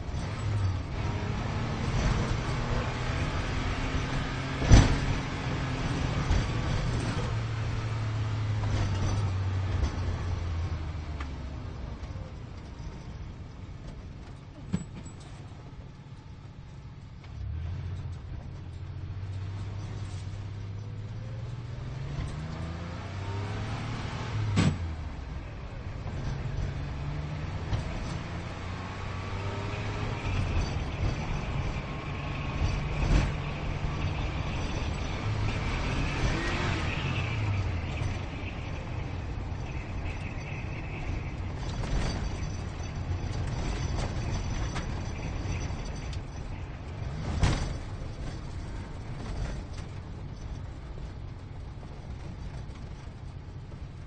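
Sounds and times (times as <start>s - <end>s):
sports car engine accelerating: 0.1s - 12.2s, 17.3s - 42.6s.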